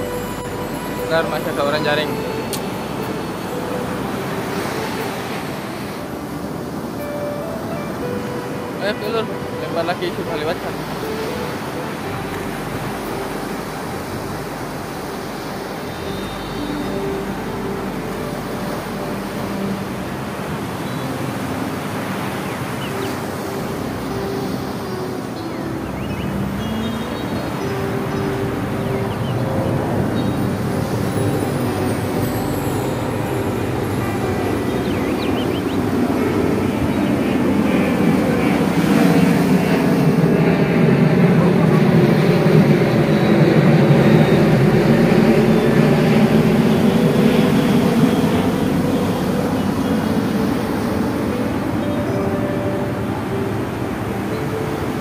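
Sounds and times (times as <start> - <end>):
ocean surf breaking: 0.0 - 55.0
wind on microphone: 0.0 - 55.0.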